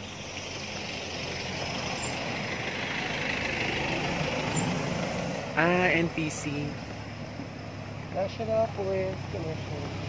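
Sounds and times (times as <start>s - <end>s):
vehicle engine and tyre noise: 0.0s - 10.0s.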